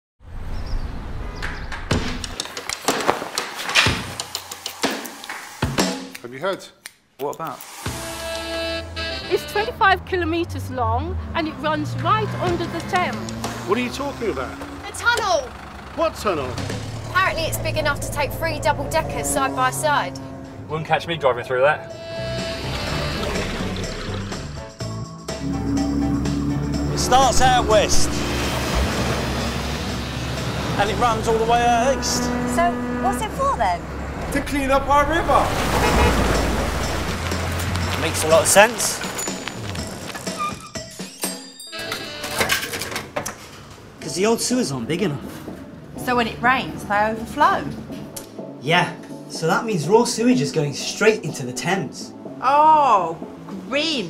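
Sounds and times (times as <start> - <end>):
wind: 0.2 - 4.6, 26.4 - 40.7
water rushing: 13.6 - 20.4, 26.4 - 40.2
low engine drone: 14.3 - 37.9
low hum: 15.5 - 21.0, 25.4 - 37.7.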